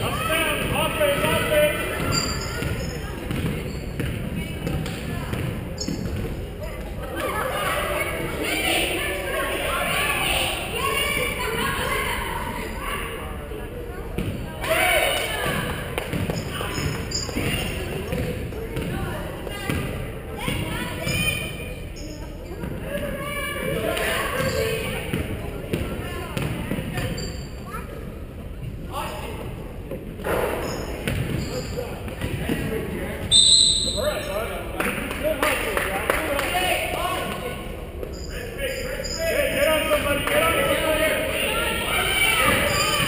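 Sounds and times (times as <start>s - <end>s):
shouting voices echoing: 0.0s - 3.6s, 33.3s - 34.7s, 35.6s - 43.0s
voices: 0.0s - 43.0s
basketball bouncing on hardwood floor: 2.6s - 6.2s
referee's whistle: 33.3s - 34.2s.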